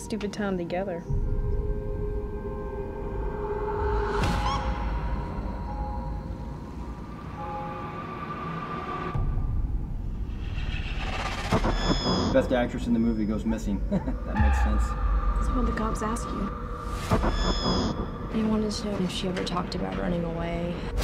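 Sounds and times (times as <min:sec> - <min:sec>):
droning tones: 0:00.0 - 0:21.0
low rumble: 0:01.0 - 0:21.0.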